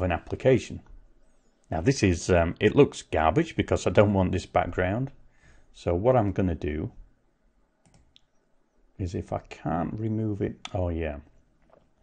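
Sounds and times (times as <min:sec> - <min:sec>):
faint computer mouse clicks: 0:07.8 - 0:08.4.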